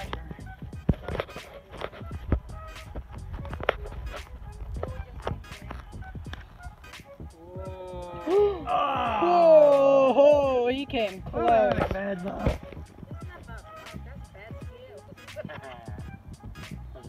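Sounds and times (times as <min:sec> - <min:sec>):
footsteps on dirt and leaves: 0:00.0 - 0:06.9.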